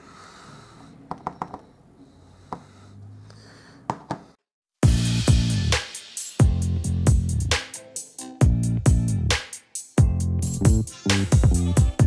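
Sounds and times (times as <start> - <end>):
upbeat music with drums: 4.8 - 12.0.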